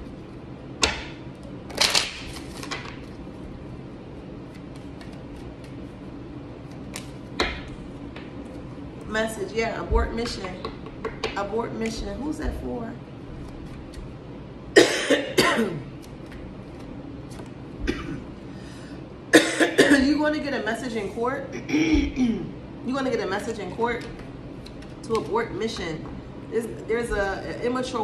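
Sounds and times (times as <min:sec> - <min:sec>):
cards being handled: 0:00.8 - 0:03.4, 0:04.4 - 0:06.0, 0:06.6 - 0:08.8, 0:15.9 - 0:17.6, 0:24.0 - 0:25.3
woman coughing: 0:14.8 - 0:15.9, 0:17.8 - 0:18.3, 0:19.3 - 0:20.1, 0:21.5 - 0:22.6.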